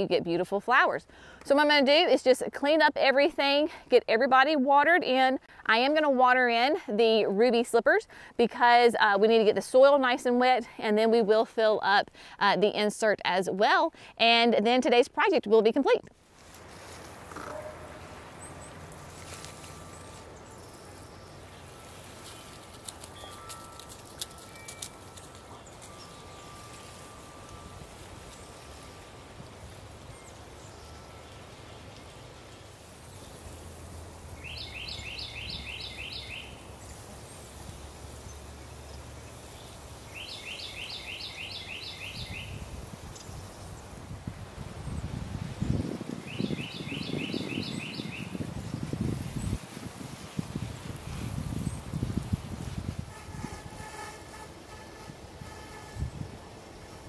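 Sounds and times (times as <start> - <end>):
songbird trilling: 34.3 - 37.5, 39.3 - 43.7, 46.2 - 48.4.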